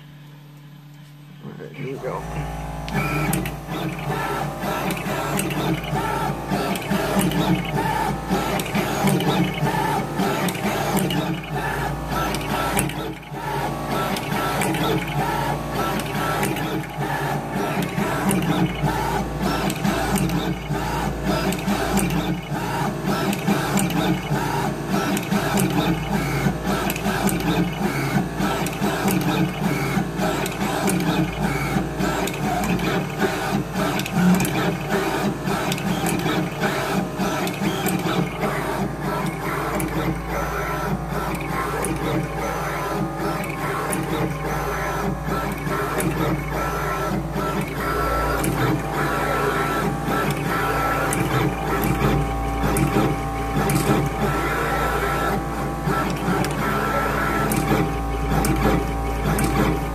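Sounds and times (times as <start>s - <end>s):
machine head whirring: 0.0s - 59.9s
quick mechanical clicks: 2.8s - 59.9s.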